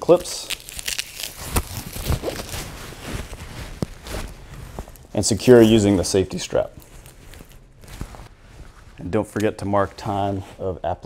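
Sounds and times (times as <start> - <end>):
nylon strap rustling and scraping: 0.1 - 11.0.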